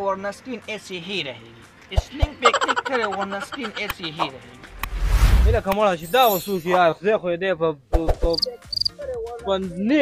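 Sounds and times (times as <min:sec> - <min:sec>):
high insect-like chirps: 0:08.3 - 0:08.9.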